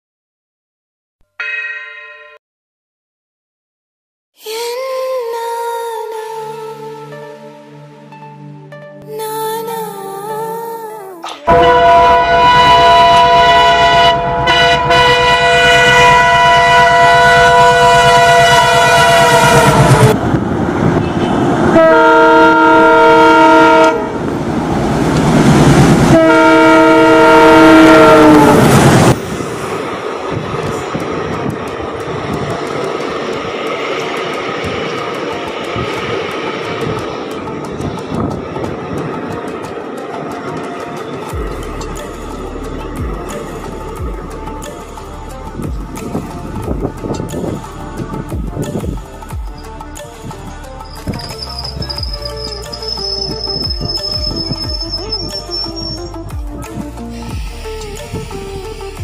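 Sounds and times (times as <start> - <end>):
locomotive horn blasts: 11.5 - 20.2, 21.1 - 24.2, 26.1 - 28.8
train wheels rumbling on rails: 11.5 - 59.0.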